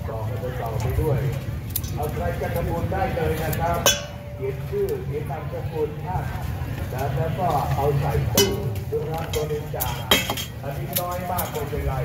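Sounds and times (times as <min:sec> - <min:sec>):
metal utensils clinking on steel bowl: 0:03.8 - 0:04.3, 0:08.3 - 0:11.7.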